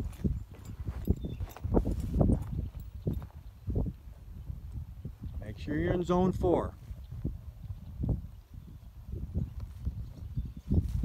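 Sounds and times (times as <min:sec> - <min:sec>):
horse hoofbeats on dirt: 0:00.0 - 0:03.5.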